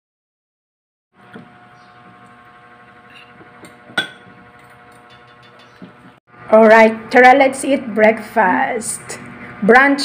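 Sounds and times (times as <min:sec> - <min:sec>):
utensil clinking against dish: 0:03.1 - 0:05.9.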